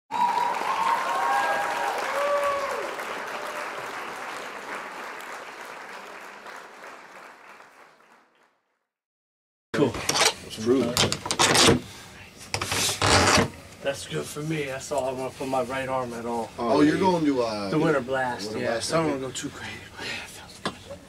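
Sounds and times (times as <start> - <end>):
crowd cheering: 0.1 - 8.6
crowd applauding: 0.1 - 8.7.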